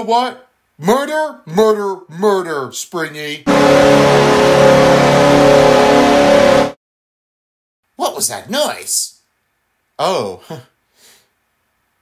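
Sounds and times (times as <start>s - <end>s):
goal horn blast: 3.5s - 6.8s.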